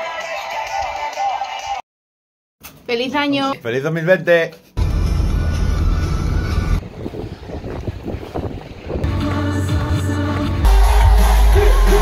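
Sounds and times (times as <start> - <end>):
wind buffeting microphone: 6.8 - 9.1
live concert music with heavy bass: 10.6 - 12.0.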